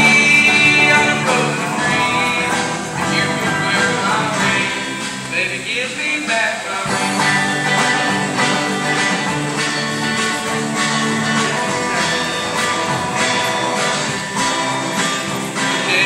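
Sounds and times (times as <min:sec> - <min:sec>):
live band with guitars: 0:00.0 - 0:16.0.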